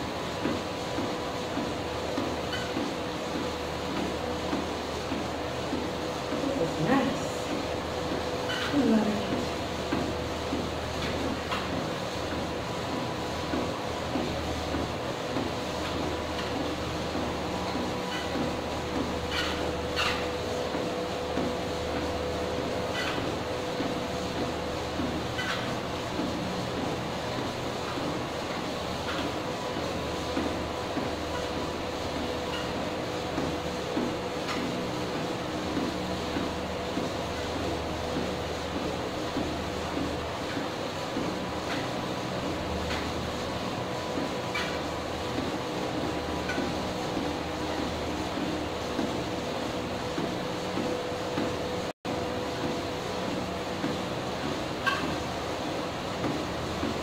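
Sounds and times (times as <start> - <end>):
footsteps on treadmill belt: 0.0 - 57.0
treadmill whine and hum: 0.0 - 57.0.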